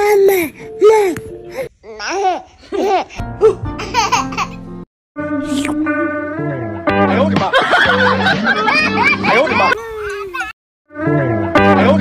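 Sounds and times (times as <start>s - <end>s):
baby laughing: 0.0s - 4.6s, 8.0s - 10.6s
background music: 3.2s - 9.8s, 10.9s - 12.0s.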